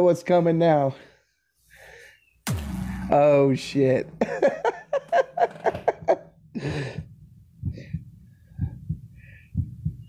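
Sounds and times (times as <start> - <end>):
loud hit ringing with low tone: 2.5 - 5.5.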